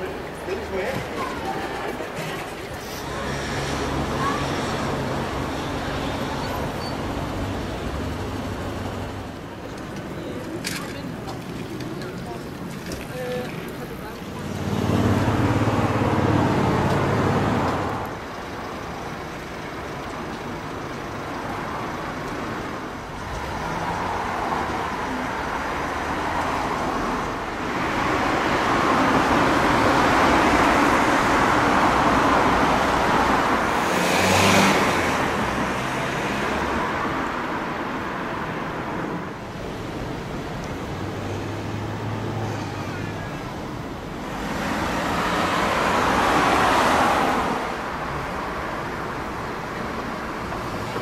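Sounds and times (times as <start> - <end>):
road traffic passing: 0.0 - 51.0.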